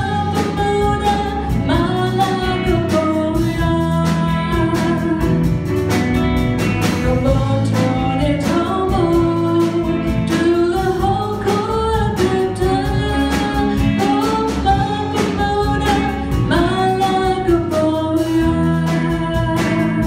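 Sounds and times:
girl singing into a microphone: 0.0s - 5.5s, 7.0s - 20.0s
drum kit: 0.0s - 20.0s
guitars: 0.0s - 20.0s.

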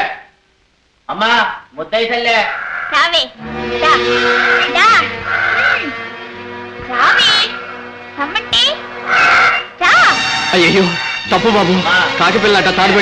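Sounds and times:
wavering high-pitched calls: 2.8s - 6.1s, 6.9s - 11.2s
film background music: 3.3s - 13.0s.

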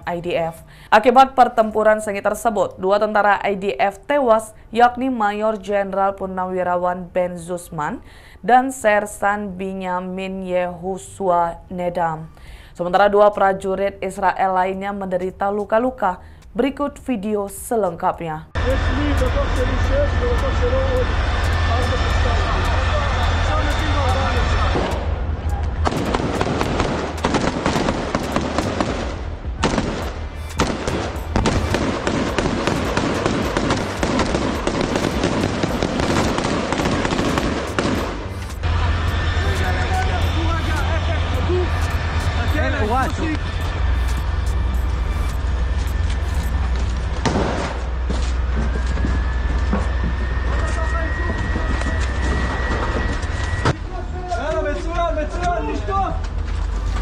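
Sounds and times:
steady low rumble: 18.5s - 57.0s
thin high whine: 18.6s - 25.8s, 38.0s - 47.2s, 47.8s - 53.8s
rapid rifle gunfire: 25.9s - 38.3s.

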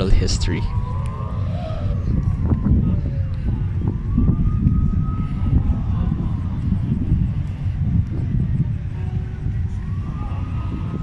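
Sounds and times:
low rumble of wind: 0.0s - 11.0s
traffic rumble: 0.0s - 11.0s.

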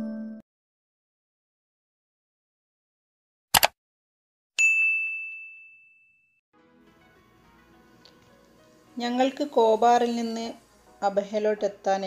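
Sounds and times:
notification bell ding: 0.0s - 0.4s, 4.6s - 6.3s.

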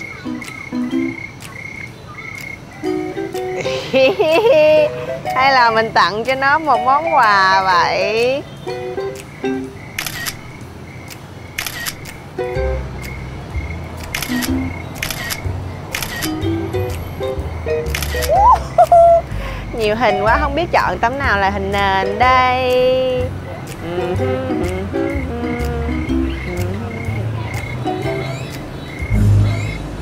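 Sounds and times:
plucked-string background music: 0.0s - 1.5s, 2.8s - 7.9s, 8.6s - 9.9s, 12.3s - 15.7s, 16.3s - 19.2s, 19.8s - 30.0s
crickets chirping: 0.0s - 30.0s
phone camera shutter sound: 10.0s - 10.5s, 11.6s - 12.2s, 14.0s - 17.0s, 17.9s - 18.5s.

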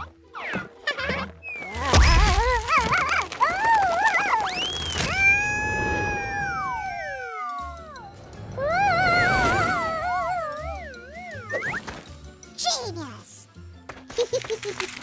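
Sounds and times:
background music: 0.0s - 15.0s.

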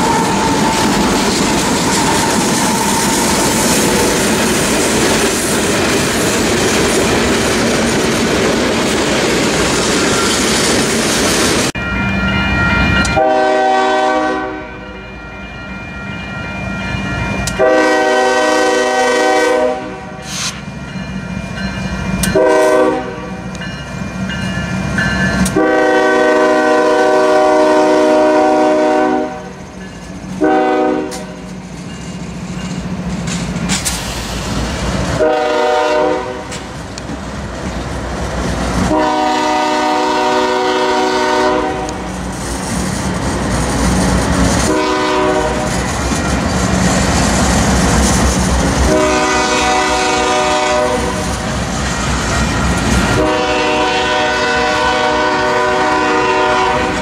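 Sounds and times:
locomotive air horn blasts: 13.1s - 14.9s, 17.5s - 20.5s, 22.3s - 23.4s, 25.5s - 29.6s, 30.4s - 31.4s, 35.2s - 36.5s, 38.9s - 42.1s, 44.6s - 45.7s, 48.8s - 51.2s, 53.1s - 57.0s.

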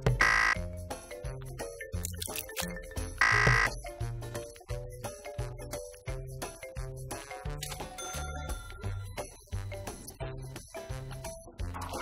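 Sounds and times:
background music with bass beat: 0.0s - 12.0s
wrong answer buzzer: 0.2s - 0.6s, 3.2s - 3.7s.

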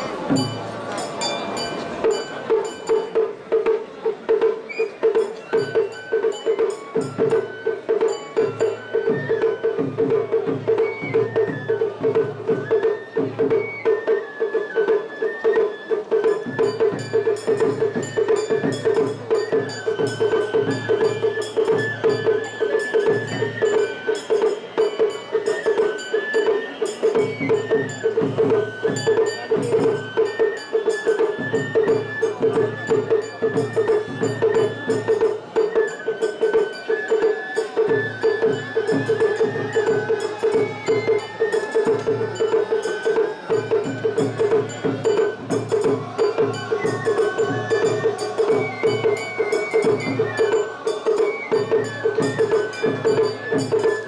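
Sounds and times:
sharp struck percussion: 0.0s - 12.6s, 15.7s - 54.0s
drums: 0.0s - 54.0s
high flute melody: 4.6s - 54.0s.

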